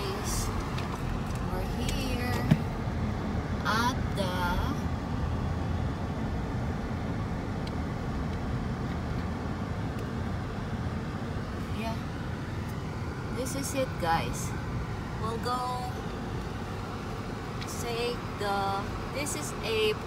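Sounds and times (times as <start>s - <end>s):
car road and engine noise: 0.0s - 20.0s.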